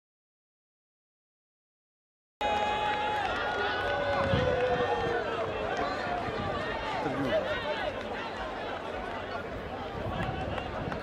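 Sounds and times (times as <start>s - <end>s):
crowd shouting and chanting: 2.4s - 11.0s.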